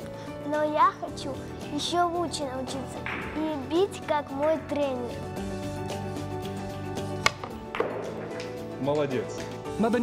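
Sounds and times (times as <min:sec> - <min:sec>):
background music with held tones: 0:00.0 - 0:10.0
cue striking billiard ball: 0:07.2 - 0:08.6.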